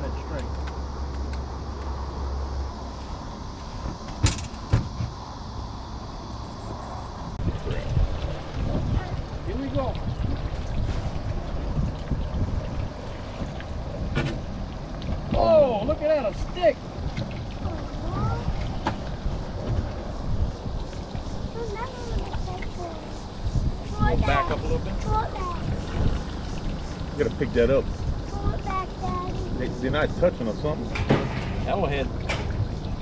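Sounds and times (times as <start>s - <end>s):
wind buffeting microphone: 6.3s - 33.0s
water splashing: 6.5s - 33.0s.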